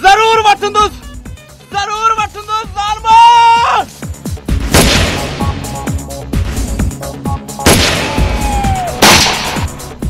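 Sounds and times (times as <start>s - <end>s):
background music: 0.0s - 10.0s
pistol gunshot: 4.6s - 5.5s, 7.6s - 8.4s, 9.0s - 9.8s.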